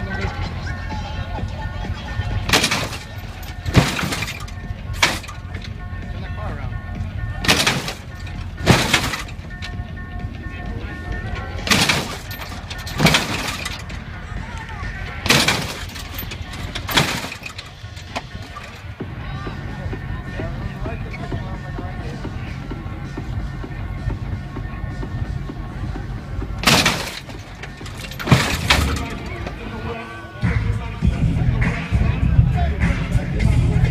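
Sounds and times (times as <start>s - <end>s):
background music: 0.0s - 33.9s
crowd chatter: 0.0s - 33.9s
hydraulic suspension clunks: 2.4s - 6.1s, 6.8s - 19.0s, 20.3s - 30.0s.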